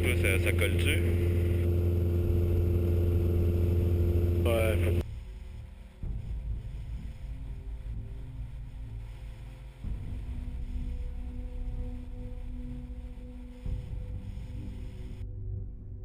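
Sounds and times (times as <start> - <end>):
person speaking: 0.0 - 1.6, 4.4 - 5.0
aircraft engine droning: 0.0 - 5.0
faint low rumble: 0.0 - 16.0.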